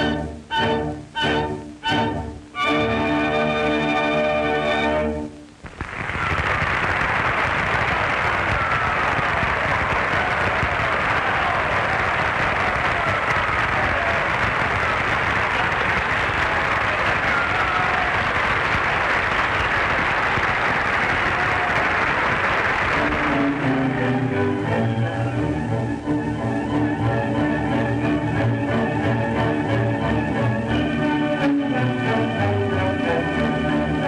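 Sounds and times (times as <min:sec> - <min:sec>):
large audience applauding: 0:05.6 - 0:25.7.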